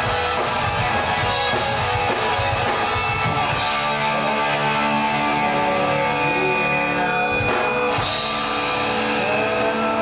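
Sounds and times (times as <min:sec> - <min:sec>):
drums: 0:00.0 - 0:10.0
electric guitars ringing: 0:00.0 - 0:10.0
rock band playing: 0:00.0 - 0:10.0.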